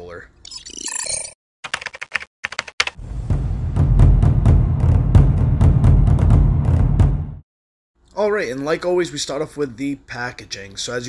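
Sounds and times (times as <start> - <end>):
intro music with heavy bass: 3.0 - 7.4.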